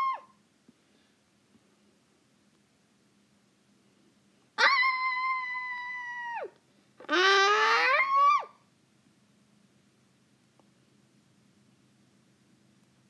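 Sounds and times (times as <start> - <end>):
child's high-pitched cries: 0.0 - 0.3, 4.6 - 8.6.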